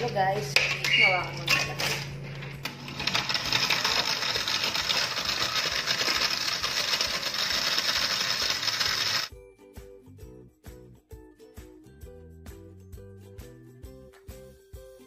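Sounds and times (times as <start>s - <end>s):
blender running: 2.8s - 9.3s.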